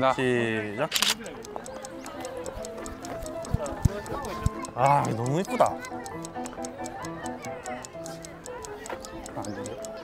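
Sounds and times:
fast clock-like ticking: 1.0s - 10.0s
background music: 1.2s - 10.0s.

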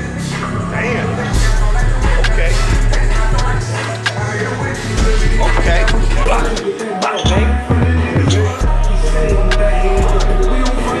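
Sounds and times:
music with heavy bass and beat: 0.0s - 11.0s.

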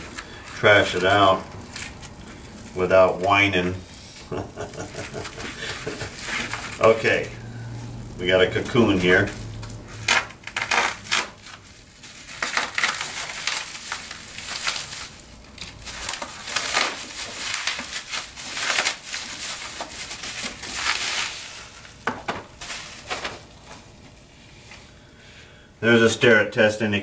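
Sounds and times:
plastic wrap crinkling: 0.0s - 25.0s.

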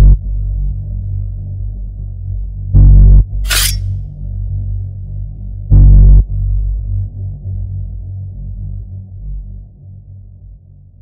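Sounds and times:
low drone music: 0.0s - 11.0s.

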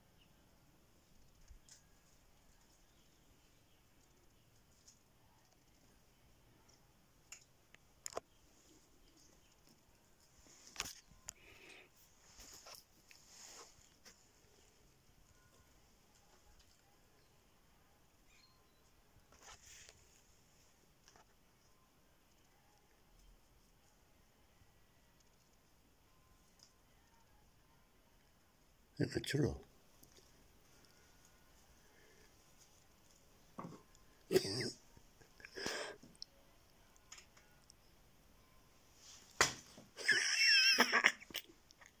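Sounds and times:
soft rustles: 12.0s - 14.9s.

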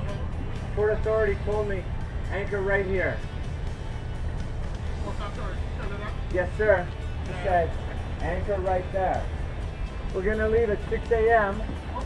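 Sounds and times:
men talking: 0.0s - 3.4s, 4.8s - 12.0s
background music: 0.0s - 12.0s
low rumble: 0.0s - 12.0s.

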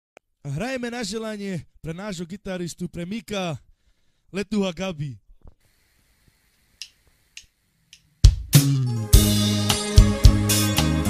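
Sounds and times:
band playing guitar and drums: 8.3s - 11.0s.

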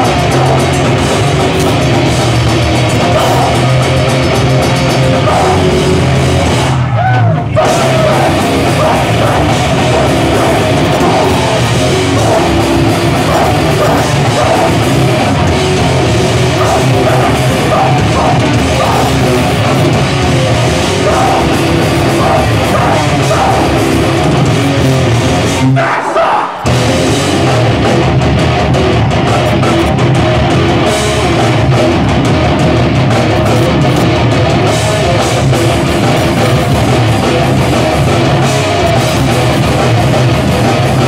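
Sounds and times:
pounding drums: 0.0s - 25.8s, 26.6s - 41.0s
bass guitar: 0.0s - 41.0s
distorted electric guitars: 0.0s - 41.0s
hardcore band playing: 0.0s - 41.0s.

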